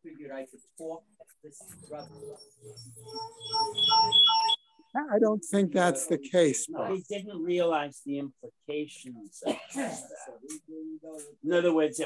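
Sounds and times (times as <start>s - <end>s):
short synthesized tune: 1.9s - 4.6s.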